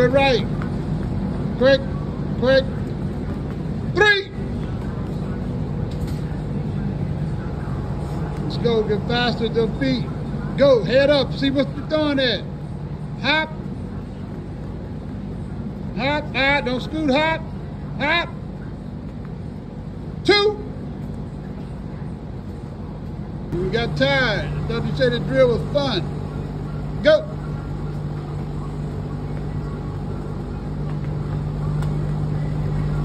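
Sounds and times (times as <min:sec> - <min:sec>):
drum fan running: 0:00.0 - 0:33.0.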